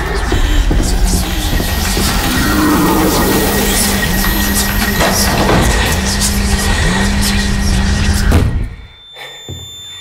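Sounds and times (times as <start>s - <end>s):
harsh rumbling drone: 0.0s - 8.4s
low hum: 0.2s - 8.4s.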